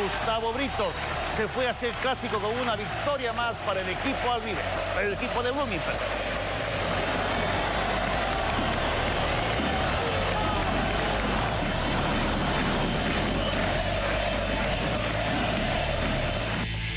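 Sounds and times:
music with steady beat: 0.0 - 16.9
stadium crowd cheering: 0.0 - 16.9.

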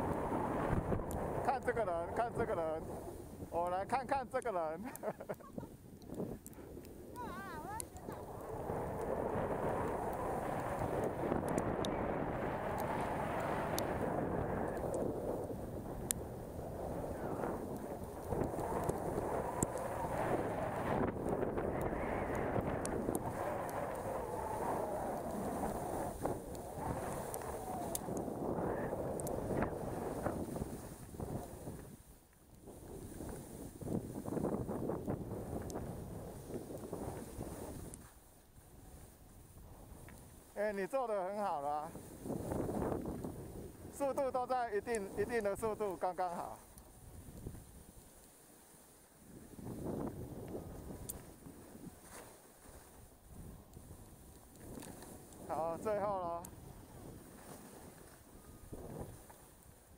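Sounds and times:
wind rushing over microphone: 0.0 - 48.1, 49.2 - 59.9
skis running over snow: 0.0 - 59.9.

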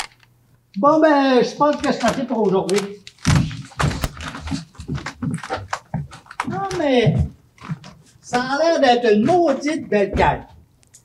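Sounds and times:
footsteps on stage floor: 3.2 - 8.6.

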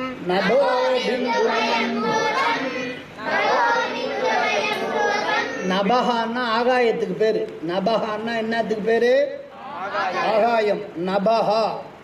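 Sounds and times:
group of voices chanting: 0.2 - 5.7.

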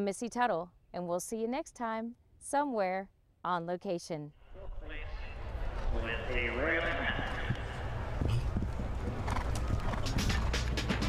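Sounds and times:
horse hoofbeats on turf: 6.8 - 11.0
music: 9.6 - 11.0.

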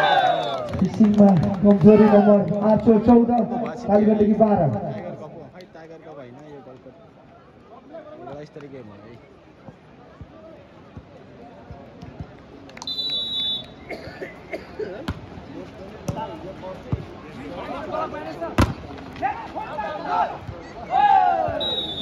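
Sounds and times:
crowd shouting: 0.0 - 0.7, 19.2 - 22.0
referee's whistle: 12.8 - 13.8, 21.5 - 22.0.

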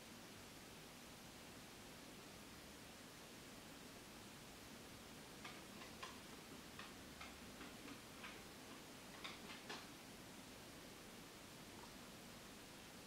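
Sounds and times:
faint irregular ticks: 5.2 - 10.1.

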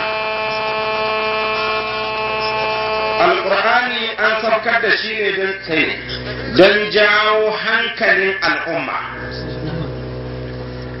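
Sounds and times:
loud steady electrical buzz: 0.0 - 11.0.

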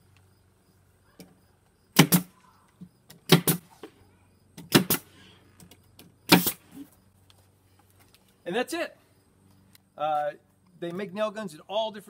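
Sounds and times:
nail gun firing: 2.0 - 2.3, 3.3 - 3.7, 4.6 - 5.1, 6.3 - 6.6.

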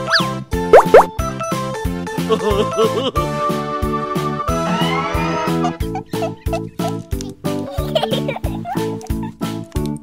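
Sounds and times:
cartoon pitch glide: 0.0 - 1.1
cartoon upward swoops: 0.0 - 1.1
bouncy children's music: 0.0 - 10.0.

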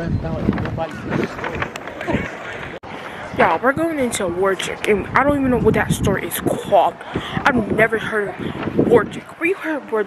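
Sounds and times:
indistinct voices: 0.0 - 10.0
outdoor bustle rustle: 0.0 - 10.0.

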